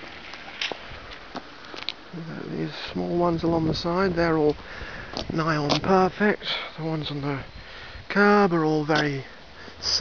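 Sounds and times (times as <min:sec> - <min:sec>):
footsteps on pavement: 0:00.0 - 0:02.0, 0:04.4 - 0:06.4
outdoor background hiss: 0:00.0 - 0:10.0.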